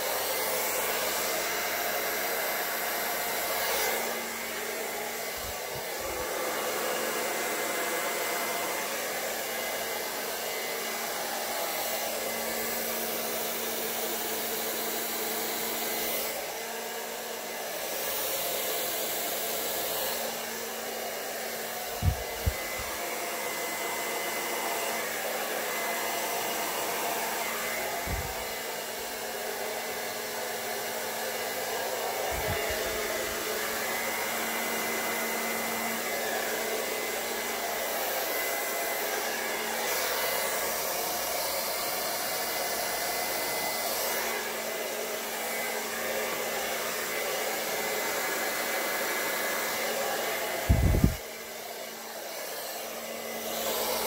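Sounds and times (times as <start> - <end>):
hair dryer blowing: 0.0 - 54.0.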